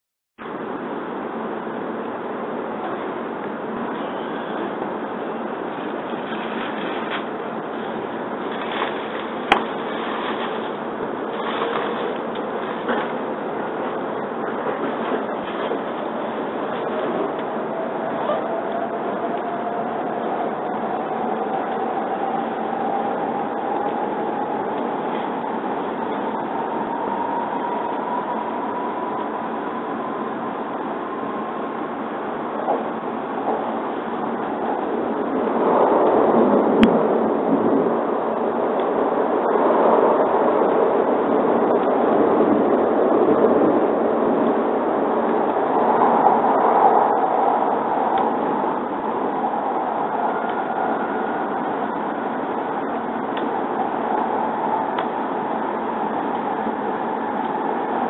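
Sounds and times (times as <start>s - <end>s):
train running rumble: 0.4s - 58.0s
train traction motor whine: 0.4s - 58.0s.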